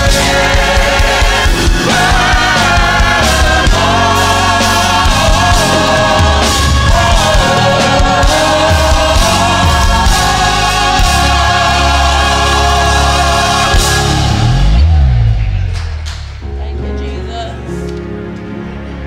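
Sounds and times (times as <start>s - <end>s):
gospel choir singing: 0.0s - 15.6s
instrumental backing with beat: 0.0s - 18.9s.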